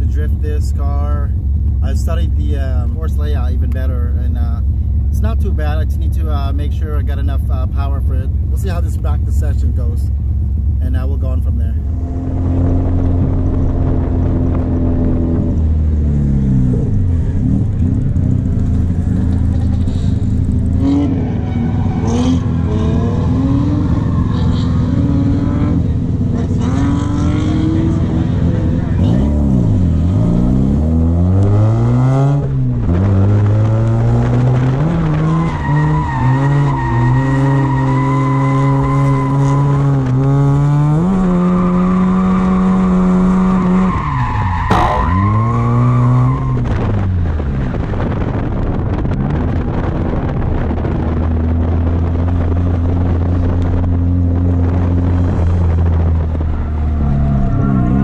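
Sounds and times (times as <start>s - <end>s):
rotary engine revving: 11.9s - 48.2s
tyre squeal: 35.3s - 40.0s, 41.4s - 46.7s.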